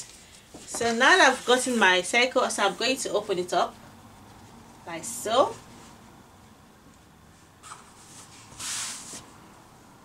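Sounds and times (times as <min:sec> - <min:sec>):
fabric rustling: 0:00.3 - 0:01.8.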